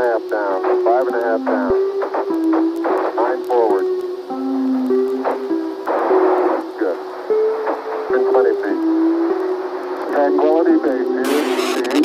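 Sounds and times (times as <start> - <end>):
crackly radio voice: 0.0 - 1.8, 2.9 - 3.9, 10.1 - 12.0
radio noise hiss: 0.0 - 12.0
electronic tones stepping between notes: 11.2 - 12.0.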